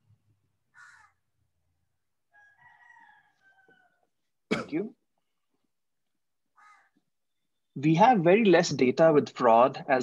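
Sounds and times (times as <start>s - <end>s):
distant animal call: 0.7s - 1.3s, 6.5s - 7.1s.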